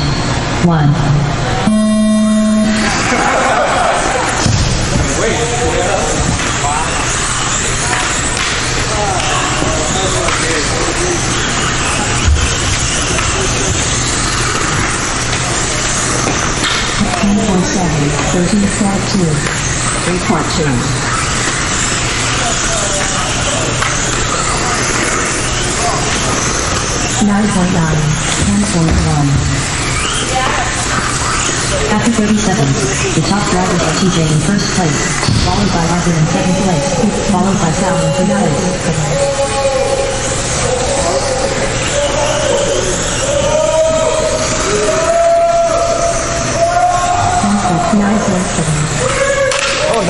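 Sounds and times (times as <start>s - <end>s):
faint voices: 0.0s - 50.0s
low race start beep: 1.6s - 3.1s
electric rc cars running: 20.7s - 27.2s.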